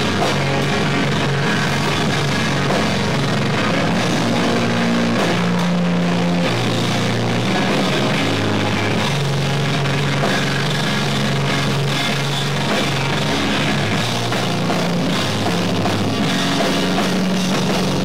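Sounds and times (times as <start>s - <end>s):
distorted electric guitars: 0.0s - 18.0s
drum kit: 0.0s - 18.0s.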